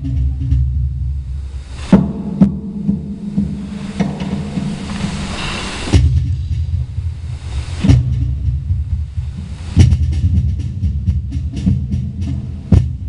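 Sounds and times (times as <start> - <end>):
deep cajon bass strokes: 0.0 - 13.0
low rumble: 0.0 - 13.0
swelling hiss: 0.0 - 13.0.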